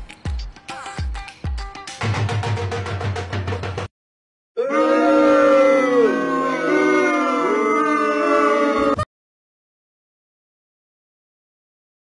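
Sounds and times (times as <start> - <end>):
long loud howl: 4.6 - 9.0.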